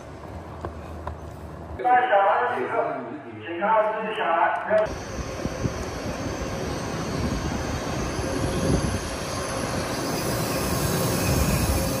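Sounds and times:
train running and wheel noise: 0:04.6 - 0:12.0.

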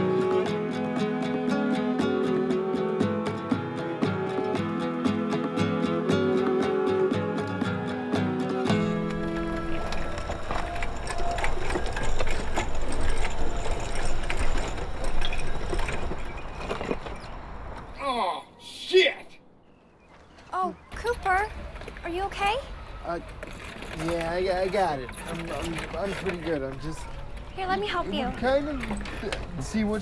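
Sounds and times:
acoustic guitar music: 0:00.0 - 0:15.1
power wheelchair motor whirring: 0:08.7 - 0:17.3
wheels crunching on gravel: 0:08.7 - 0:17.9, 0:22.6 - 0:30.0.

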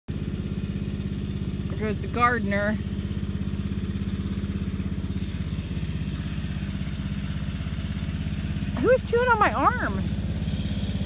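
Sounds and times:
riding lawn mower engine running: 0:00.1 - 0:11.0.

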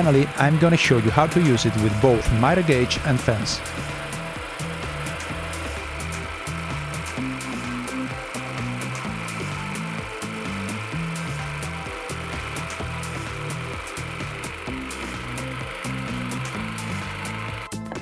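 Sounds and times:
background music with beat: 0:00.0 - 0:18.0
jigsaw cutting plywood: 0:00.0 - 0:18.0.

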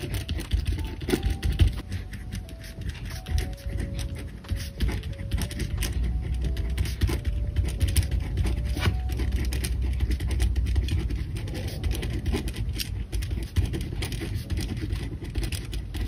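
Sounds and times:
pen nib tapping: 0:00.0 - 0:16.0
pen scratching on paper: 0:00.0 - 0:16.0.

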